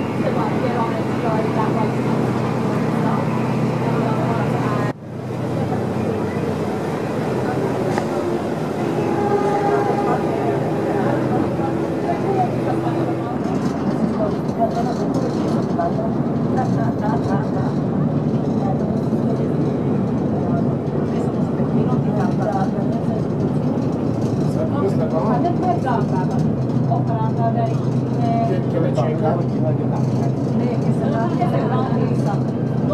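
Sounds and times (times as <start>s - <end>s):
indistinct voices: 0.0s - 24.0s
ferry engine droning: 0.0s - 32.9s.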